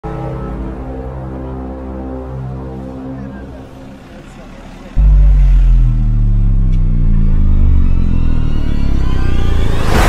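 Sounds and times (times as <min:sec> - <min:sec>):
deep droning hum: 0:05.0 - 0:10.0.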